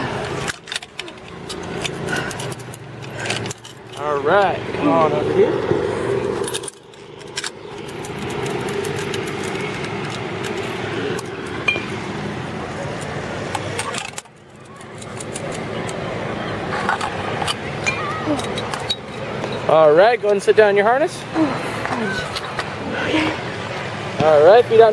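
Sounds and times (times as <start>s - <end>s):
metallic clinking of harness gear: 0.4s - 4.3s, 6.3s - 11.8s.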